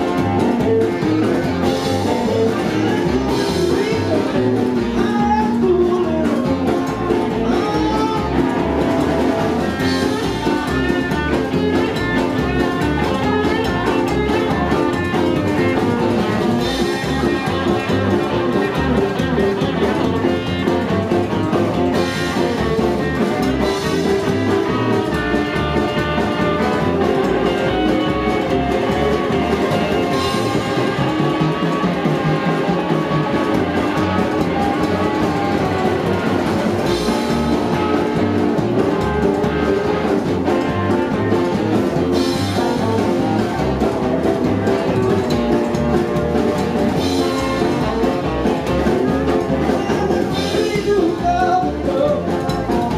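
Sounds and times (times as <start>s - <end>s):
rockabilly band playing: 0.0s - 52.9s.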